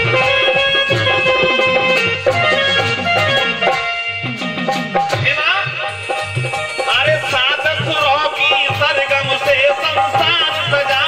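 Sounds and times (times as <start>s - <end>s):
dholak drum beat: 0.0s - 11.0s
wavering keyboard melody: 0.0s - 11.0s.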